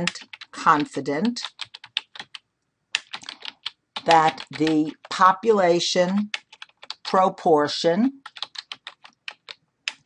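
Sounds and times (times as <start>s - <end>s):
computer keyboard typing: 0.0s - 7.2s, 8.1s - 10.0s.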